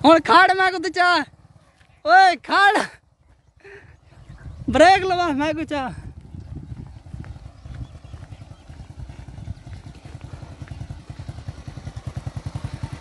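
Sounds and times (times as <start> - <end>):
motorcycle engine idling: 0.0 - 13.0.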